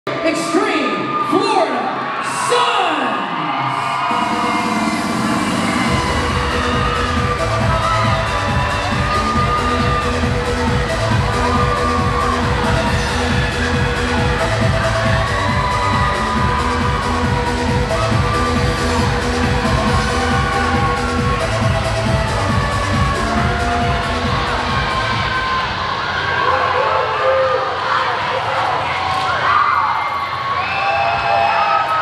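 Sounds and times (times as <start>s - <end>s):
loud electronic dance music: 0.1s - 28.6s.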